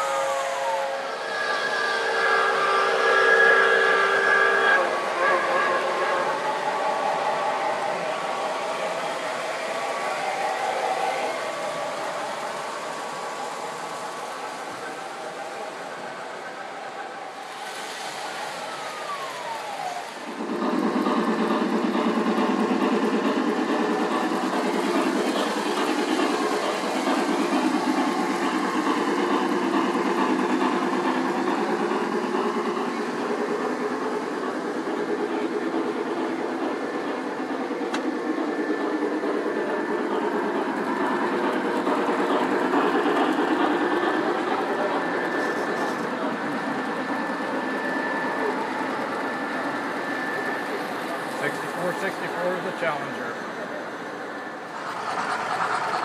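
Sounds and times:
model train wheels rumbling on track: 0.0 - 56.0.

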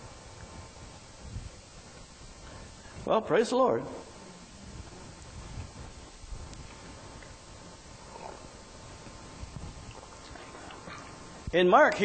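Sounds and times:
faint steady hum: 0.0 - 12.0
low rumbling room noise: 0.0 - 12.0.

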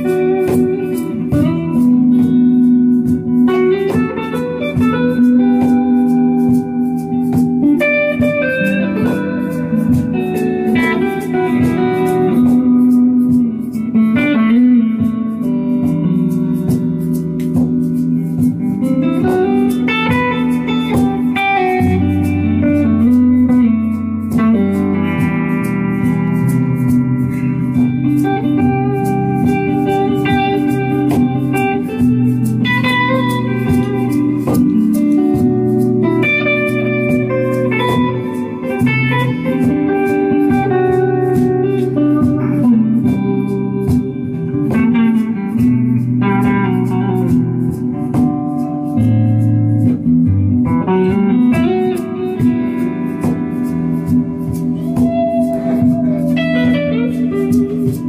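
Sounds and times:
electric guitar melody: 0.0 - 58.0
ticking beat: 0.0 - 58.0.

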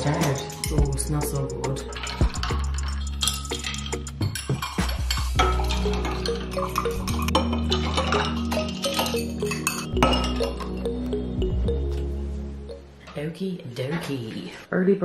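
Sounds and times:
metal straws clinking against glasses: 0.0 - 12.1
background music: 0.0 - 14.3.

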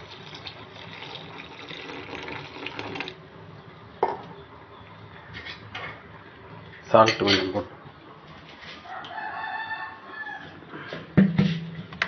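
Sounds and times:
rooster crowing: 8.8 - 11.0.

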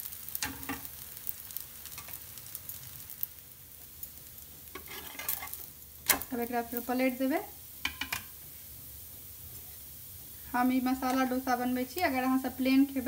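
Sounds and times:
batter sizzling on a hot pan: 0.0 - 13.0
metal spatula scrapes and clicks: 4.8 - 6.2.

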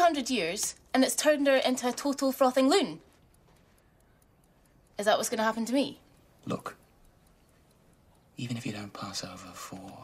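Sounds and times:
faint clock ticking: 0.0 - 10.0.

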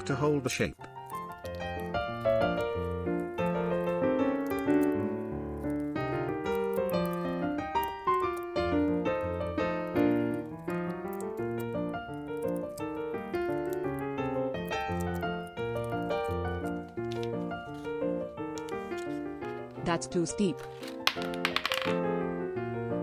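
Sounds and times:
background piano music: 0.0 - 23.0.

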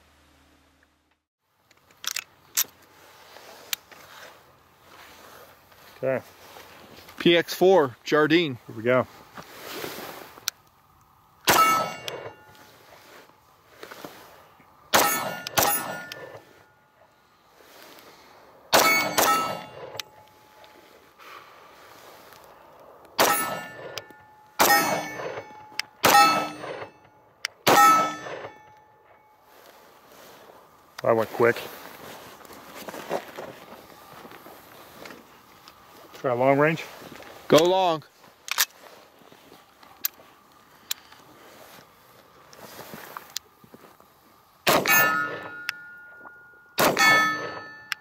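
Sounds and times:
pistol shots: 11.5 - 12.4, 14.9 - 16.4, 18.7 - 20.0, 23.2 - 24.0, 24.6 - 26.9, 27.6 - 28.6, 44.7 - 45.6, 46.8 - 47.8
steel target clanging: 11.5 - 12.8, 14.9 - 16.8, 18.7 - 20.6, 23.2 - 29.3, 44.7 - 48.0.

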